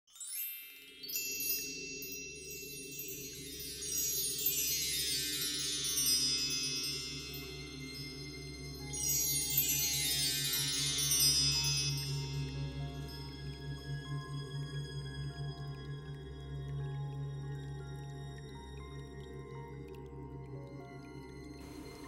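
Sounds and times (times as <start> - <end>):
cascading chime-like ringing tones: 0.1 - 14.0
low sustained drone: 5.2 - 22.0.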